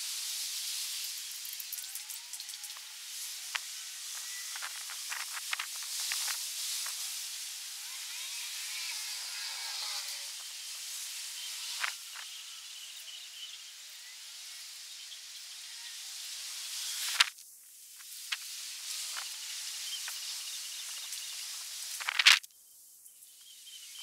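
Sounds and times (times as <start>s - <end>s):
steady high hiss: 0.0s - 24.0s
faint chirps: 7.9s - 17.2s, 18.9s - 24.0s.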